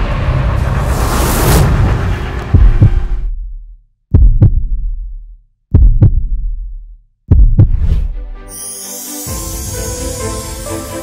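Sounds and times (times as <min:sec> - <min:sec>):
heartbeat thumps: 0:02.5 - 0:08.1
music with shimmering hiss: 0:08.5 - 0:11.0.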